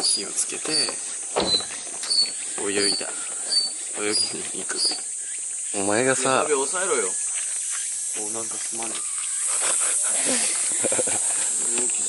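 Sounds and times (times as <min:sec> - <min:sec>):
high-pitched insect chorus: 0:00.0 - 0:12.0.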